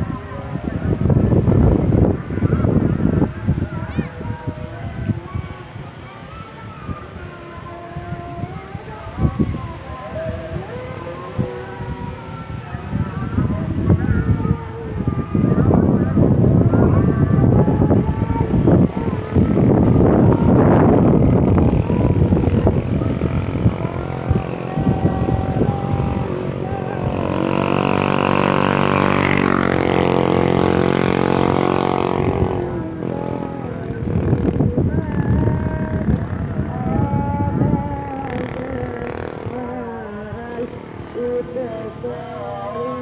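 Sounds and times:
motor scooter passing by: 0:00.0 - 0:43.0
outdoor noise: 0:00.0 - 0:43.0
voices: 0:00.0 - 0:43.0.

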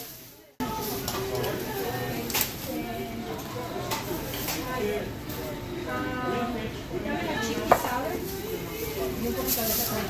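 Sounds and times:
plastic bags rustling: 0:00.0 - 0:05.5, 0:07.9 - 0:10.0.

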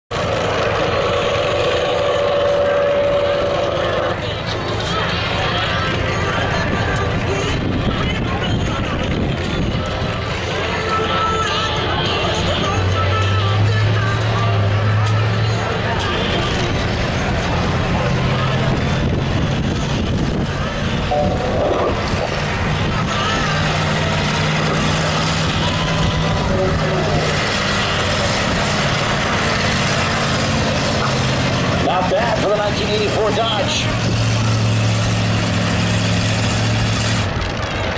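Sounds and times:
pickup truck engine running: 0:00.1 - 0:37.9
steady whine: 0:00.1 - 0:37.9.

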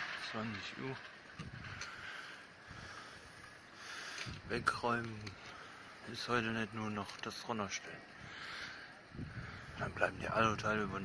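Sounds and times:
faint street background hiss: 0:00.0 - 0:11.0.

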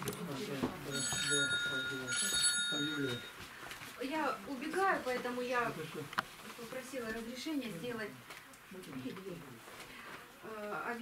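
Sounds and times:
bell-like ring: 0:00.9 - 0:03.4.

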